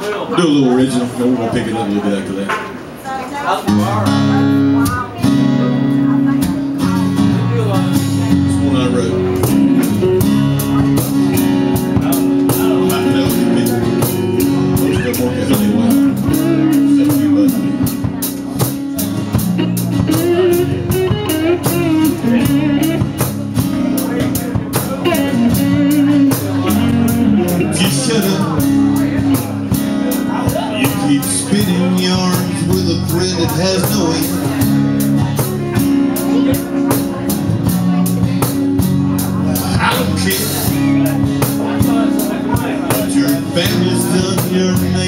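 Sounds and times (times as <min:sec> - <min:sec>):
electric guitar melody: 0:03.1 - 0:45.0
strummed acoustic guitar: 0:03.6 - 0:45.0.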